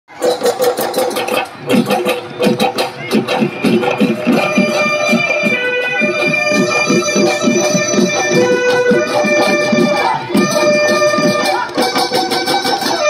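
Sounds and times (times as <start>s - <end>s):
drums beating fast rhythm: 0.1s - 13.0s
reedy hornpipe wail: 3.3s - 13.0s.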